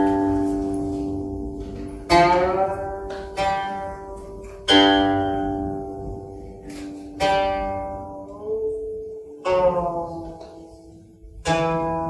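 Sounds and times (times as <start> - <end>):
plucked zither notes ringing: 0.0 - 12.0.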